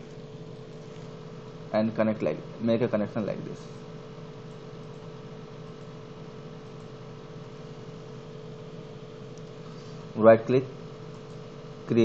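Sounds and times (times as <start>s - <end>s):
background hiss and hum: 0.0s - 12.0s.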